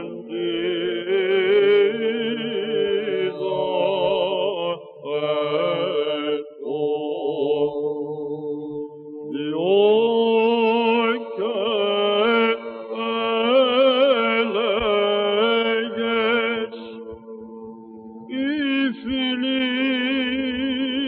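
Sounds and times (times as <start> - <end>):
held vocal drone: 0.0 - 21.0
man singing ornamented chant: 0.0 - 21.0.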